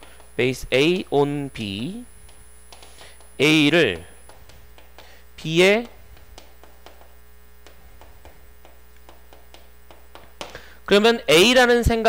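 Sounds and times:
marker tapping on board: 0.0s - 1.1s, 2.2s - 10.7s
electrical mains hum: 0.0s - 12.0s.

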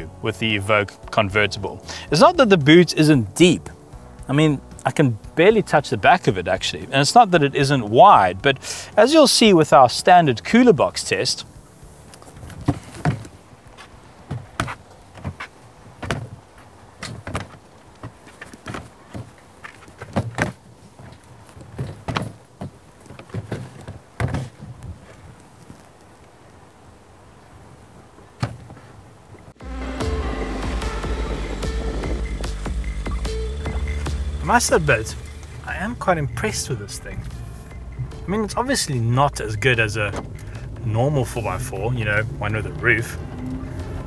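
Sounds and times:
music: 0.0s - 12.4s, 29.6s - 40.6s
cooler box thumping and scraping: 12.3s - 13.4s, 14.2s - 16.4s, 17.0s - 24.7s.

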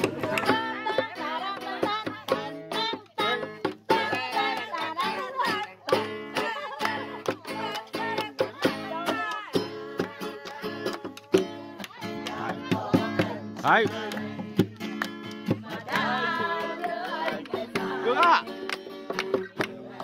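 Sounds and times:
acoustic guitar strumming: 0.0s - 20.0s
man singing: 13.6s - 14.4s, 18.0s - 18.5s.

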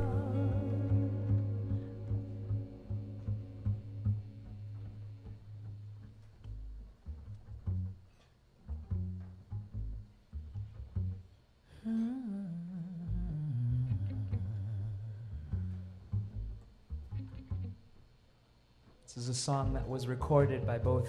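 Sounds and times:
low hummed vocal: 0.0s - 4.6s, 11.7s - 16.3s
plucked double bass: 0.0s - 11.3s, 12.9s - 18.0s, 19.5s - 21.0s.

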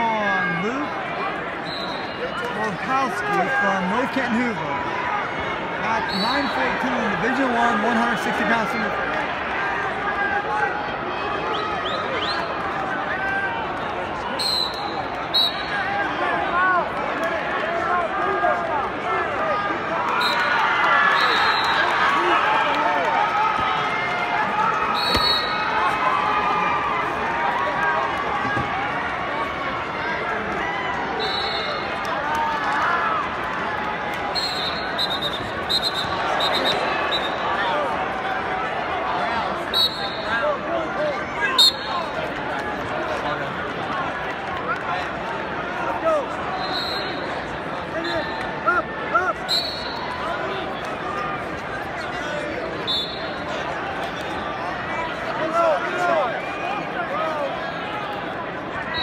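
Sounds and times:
crowd of voices talking: 0.0s - 59.0s
short high whistle blasts: 25.0s - 25.6s, 52.9s - 53.4s.

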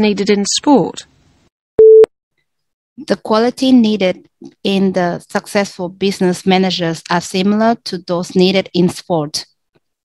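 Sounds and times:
short electronic beep: 1.8s - 2.1s.

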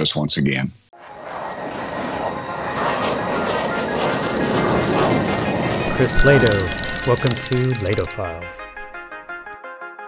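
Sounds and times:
fighter jet engine roar: 1.0s - 8.9s.

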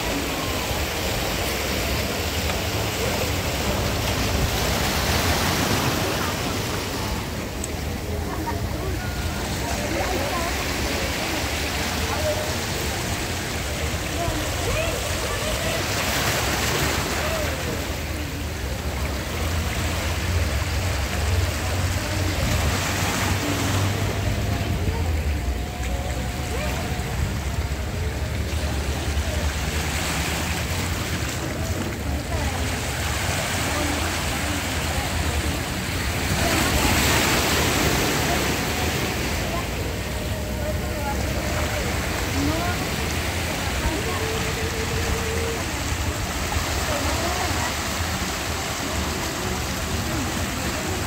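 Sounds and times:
sea surf washing around rocks: 0.0s - 51.0s.

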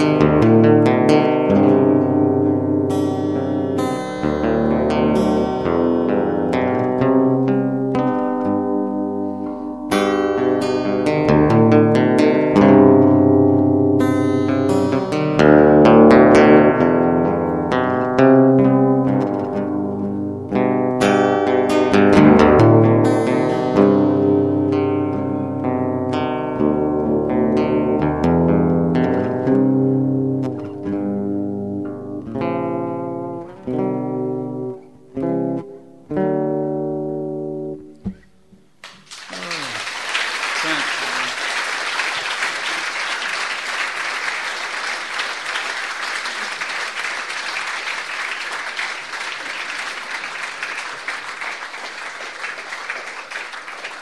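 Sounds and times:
fingerpicked acoustic guitar: 0.0s - 39.1s
audience applauding: 38.8s - 54.0s.

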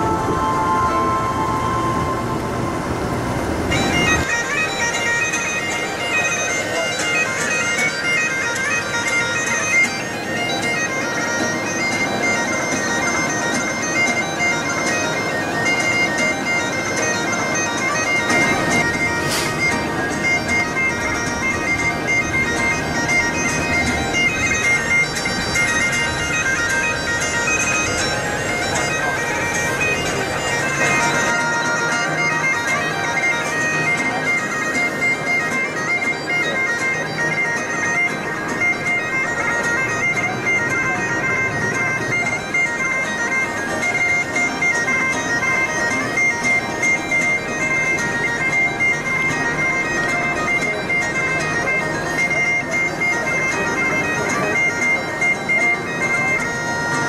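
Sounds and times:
bagpipe music: 0.0s - 57.0s.

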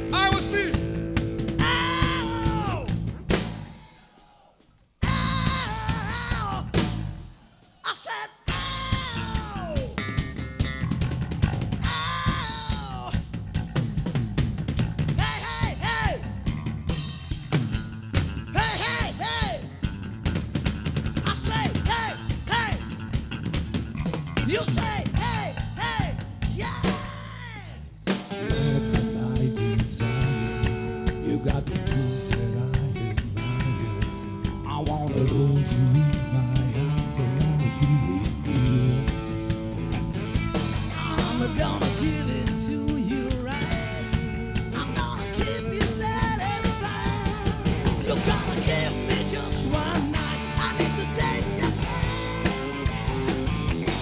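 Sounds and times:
live rock band playing: 0.0s - 3.8s, 5.0s - 7.3s, 8.5s - 54.0s
drum kit: 0.0s - 4.3s, 5.0s - 7.7s, 8.5s - 54.0s.

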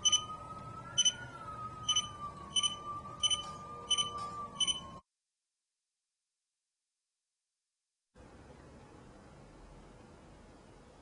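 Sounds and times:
short high double beeps: 1.9s - 4.8s.

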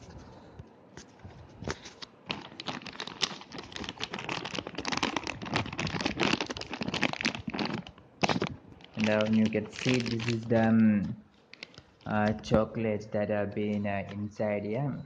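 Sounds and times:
plastic snack bag crinkling: 1.7s - 12.5s.

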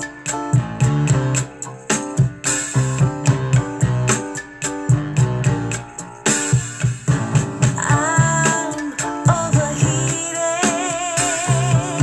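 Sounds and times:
song through speakers: 0.0s - 12.0s.

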